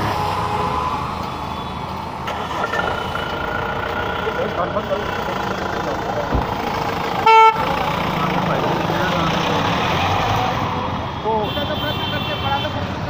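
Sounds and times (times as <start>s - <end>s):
street traffic and engines: 0.0s - 13.0s
vehicle horn toot: 7.2s - 7.6s.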